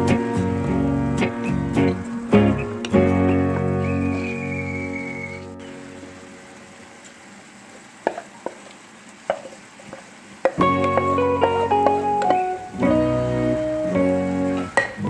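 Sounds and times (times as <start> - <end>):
background music: 0.0 - 6.3, 10.6 - 15.0
vegetables sizzling in a frying pan: 0.0 - 15.0
spoon clicking against pan: 11.8 - 12.5, 14.8 - 15.0.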